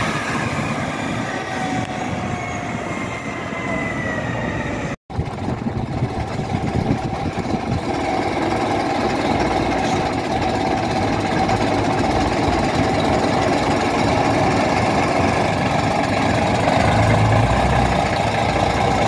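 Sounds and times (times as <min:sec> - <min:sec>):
bus diesel engine running: 0:00.0 - 0:19.0.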